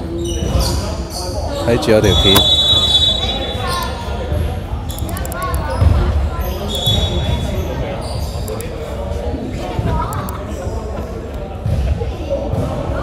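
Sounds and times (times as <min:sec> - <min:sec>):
players' voices: 0:00.0 - 0:13.0
sharp clicks: 0:04.9 - 0:05.6.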